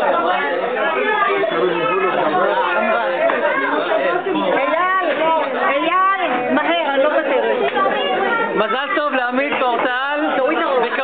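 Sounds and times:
overlapping party chatter: 0.0s - 11.0s.

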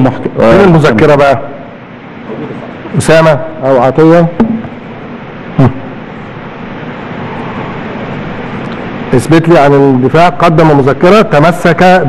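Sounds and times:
hushed crowd background noise: 0.0s - 12.0s.

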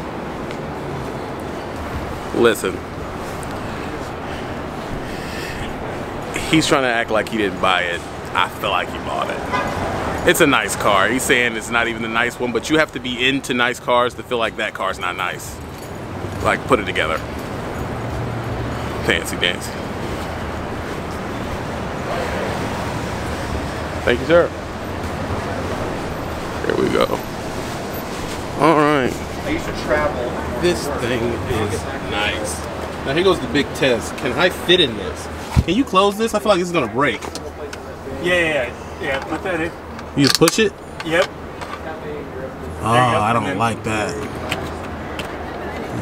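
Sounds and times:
traffic rumble: 0.0s - 46.0s.

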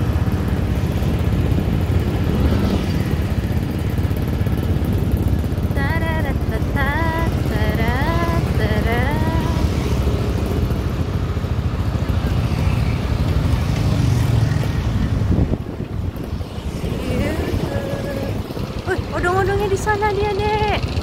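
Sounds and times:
motor scooter engine running: 0.0s - 21.0s
wind buffeting microphone: 14.3s - 21.0s.

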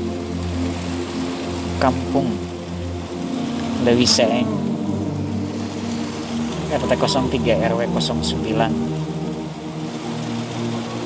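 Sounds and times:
low hum: 0.0s - 11.0s
rain on water: 0.0s - 11.0s.

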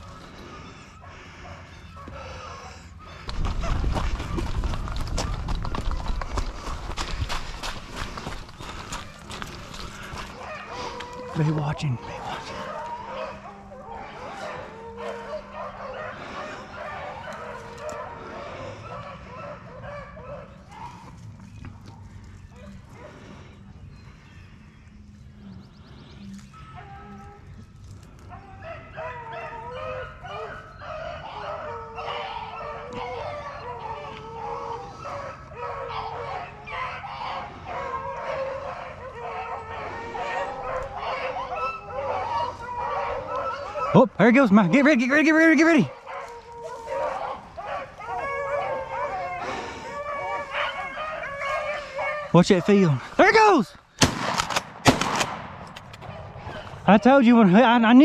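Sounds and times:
hounds baying: 0.0s - 54.0s, 55.8s - 58.0s.

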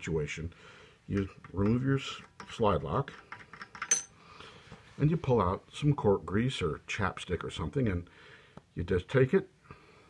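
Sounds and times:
bright metal ring: 3.9s - 4.2s.

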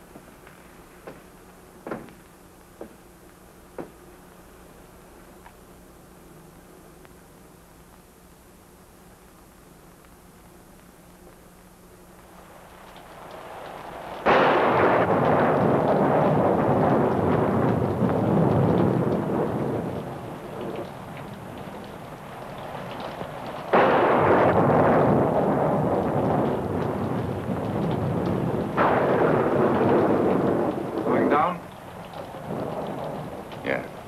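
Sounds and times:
rain: 0.0s - 34.0s
thunder claps: 13.2s - 34.0s.

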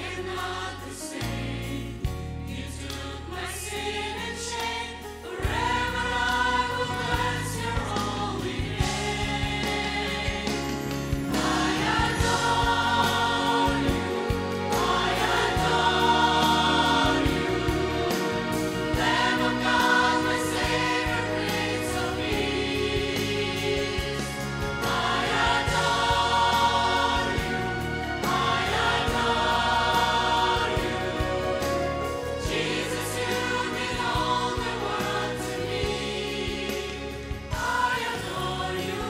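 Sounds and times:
choir singing a hymn: 0.0s - 39.0s.

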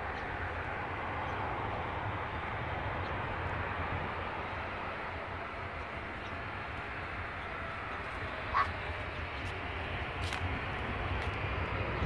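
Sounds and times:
distant jet engines: 0.0s - 12.0s.

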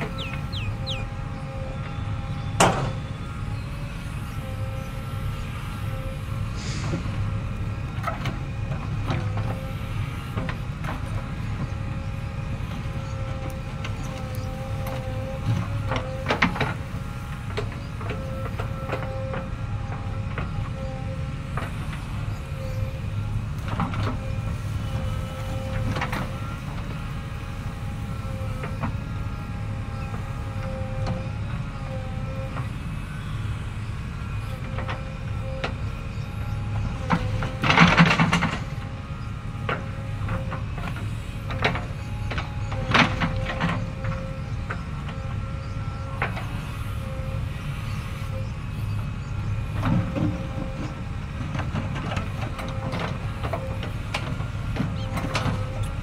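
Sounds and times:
diesel engine running under load: 0.0s - 56.0s.

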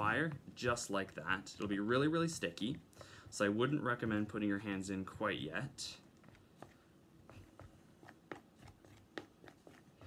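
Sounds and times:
utensil stirring sticky mix: 0.0s - 10.0s.

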